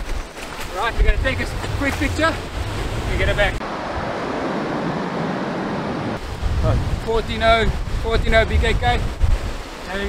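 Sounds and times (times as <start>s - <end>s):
surf breaking on beach: 0.0s - 10.0s
wind buffeting microphone: 0.0s - 10.0s.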